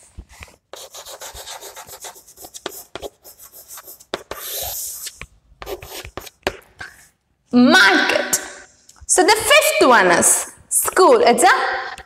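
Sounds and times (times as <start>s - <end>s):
chalk scratching on blackboard: 0.2s - 7.1s.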